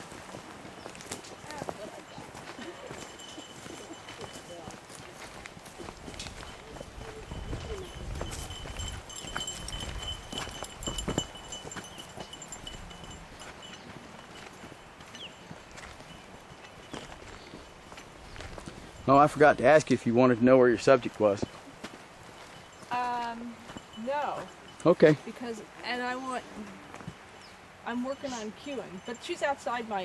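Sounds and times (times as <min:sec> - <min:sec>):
footsteps on gravel: 0:00.0 - 0:19.3, 0:21.0 - 0:25.2.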